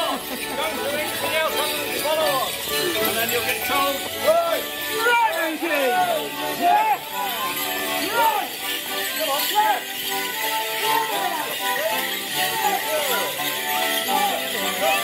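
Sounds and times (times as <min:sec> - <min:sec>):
folk dance tune: 0:00.0 - 0:15.0
leg bells jingling: 0:00.0 - 0:15.0
people's voices: 0:00.0 - 0:15.0.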